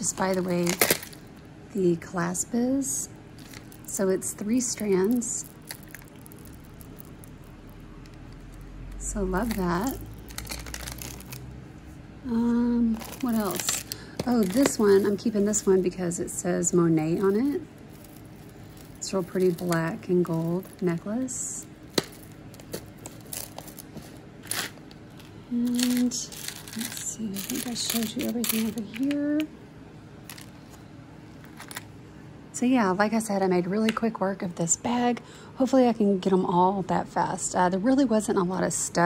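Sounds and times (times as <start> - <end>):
beads ticking: 3.4 - 11.5, 17.0 - 28.8
jewelry handling on a tray: 17.1 - 21.3.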